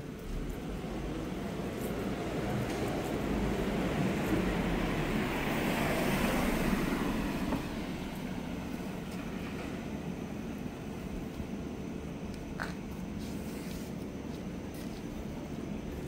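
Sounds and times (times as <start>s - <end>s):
steady street hum: 0.0s - 16.0s
car passing by: 0.8s - 10.0s.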